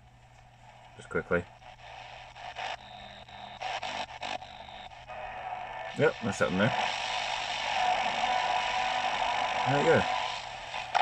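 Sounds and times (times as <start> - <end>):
whine of weak radio signals: 0.0 - 11.0
radio static and hiss: 0.6 - 11.0.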